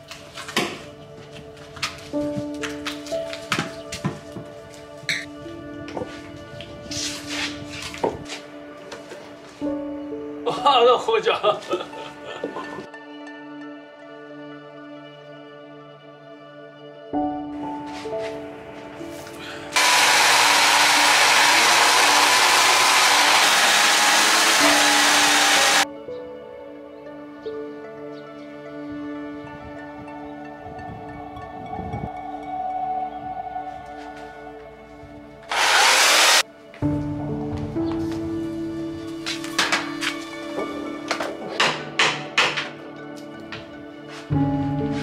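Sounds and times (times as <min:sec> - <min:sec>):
background music: 0:00.0 - 0:45.0
electric chainsaw cutting wood: 0:19.8 - 0:25.8, 0:35.5 - 0:36.4.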